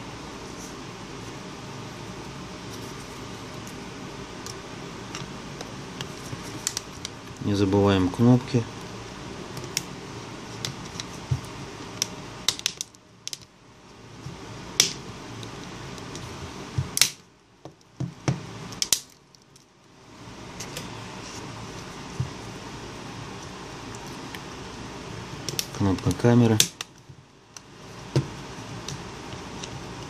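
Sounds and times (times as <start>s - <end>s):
low background noise: 0.0s - 30.0s.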